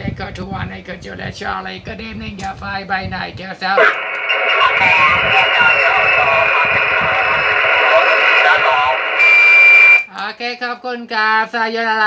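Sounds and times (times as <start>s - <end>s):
steady radio hiss: 3.6s - 10.0s
radio operator talking: 3.7s - 10.1s
steady whistle tone: 3.8s - 10.1s.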